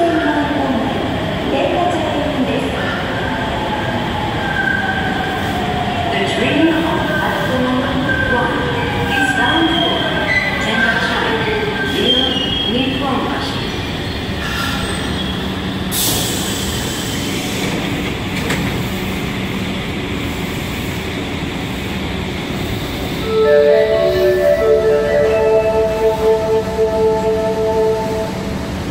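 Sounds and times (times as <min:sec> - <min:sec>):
stopped train humming: 0:05.1 - 0:28.9
platform chime melody: 0:23.3 - 0:28.2.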